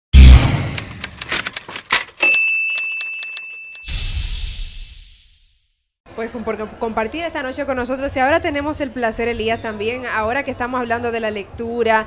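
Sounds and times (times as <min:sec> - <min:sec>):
typewriter carriage bell ding: 0:02.0 - 0:03.9
whoosh: 0:03.9 - 0:05.7.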